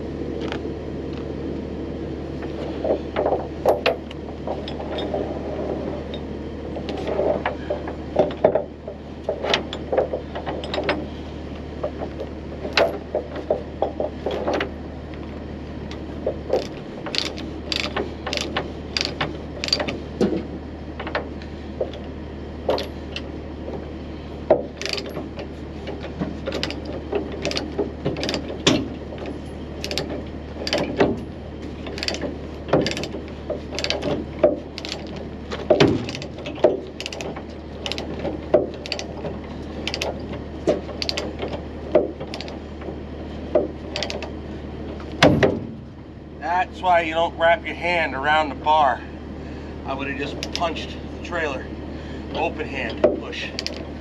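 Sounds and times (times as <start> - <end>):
steady low hum: 0.0 - 54.0
chain clanking and rattling: 2.4 - 11.2, 11.8 - 14.8, 15.9 - 23.3, 24.5 - 46.0, 50.2 - 51.0, 52.4 - 53.9
sharp metal clicks: 15.9 - 20.0, 24.5 - 25.2, 25.9 - 42.6, 43.5 - 44.3, 50.2 - 50.8, 52.9 - 53.9.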